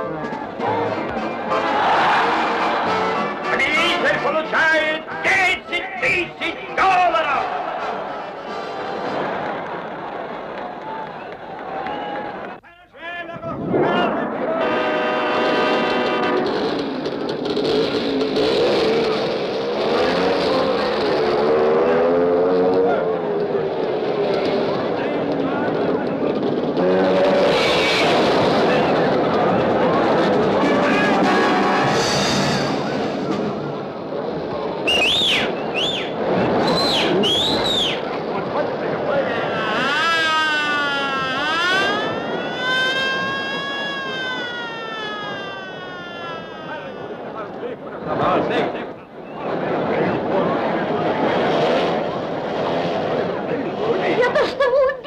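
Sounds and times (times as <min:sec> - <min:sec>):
sirens wailing: 0:39.4 - 0:47.6.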